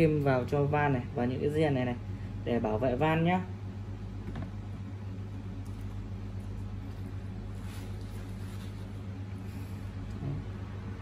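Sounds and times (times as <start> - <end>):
low room hum: 0.0 - 11.0
faint handling sounds: 5.7 - 10.2.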